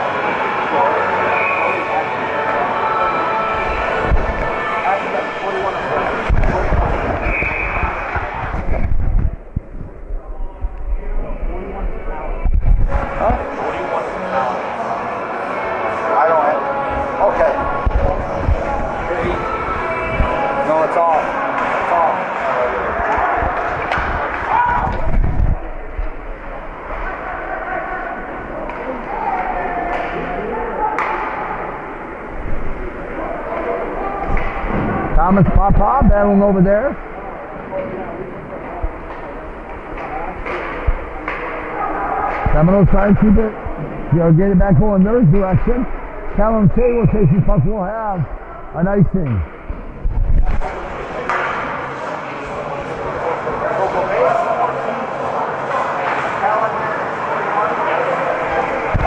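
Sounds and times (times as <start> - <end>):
people talking: 0.0 - 9.4, 10.1 - 25.7, 32.7 - 49.5.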